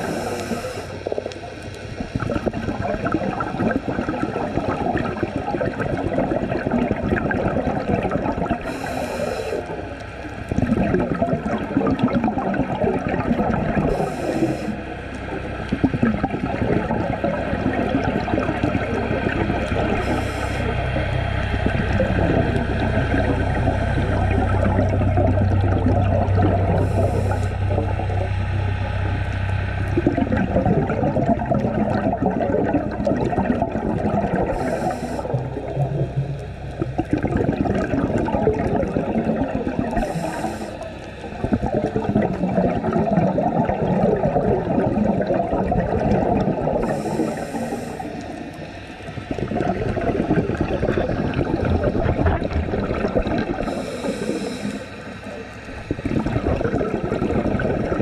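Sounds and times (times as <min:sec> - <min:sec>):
regulator inhalation hiss: 0:00.0 - 0:01.3, 0:08.6 - 0:10.0, 0:13.9 - 0:15.2, 0:19.9 - 0:21.0, 0:26.8 - 0:27.7, 0:34.5 - 0:35.7, 0:39.9 - 0:41.4, 0:46.8 - 0:49.2, 0:53.5 - 0:56.0
low steady drone: 0:00.0 - 0:03.2, 0:08.5 - 0:58.0
exhaled bubbles gurgling: 0:00.0 - 0:58.0.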